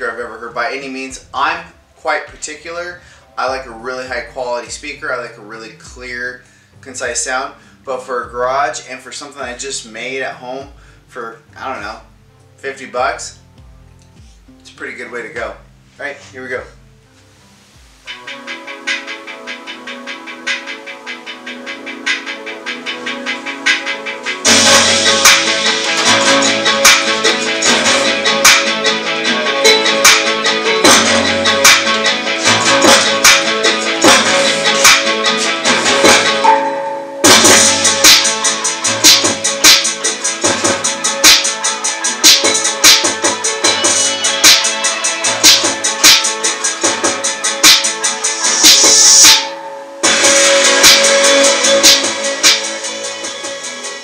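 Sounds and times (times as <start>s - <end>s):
guitar instrumental music: 15.8s - 53.6s.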